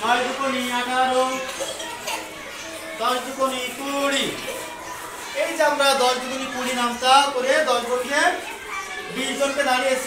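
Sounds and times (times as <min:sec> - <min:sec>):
class chatter: 0:00.0 - 0:10.0.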